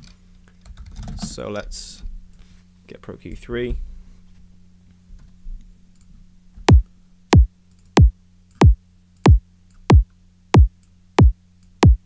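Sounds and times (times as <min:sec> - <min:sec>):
synthesized kick drum: 0:07.4 - 0:10.0, 0:10.6 - 0:12.0.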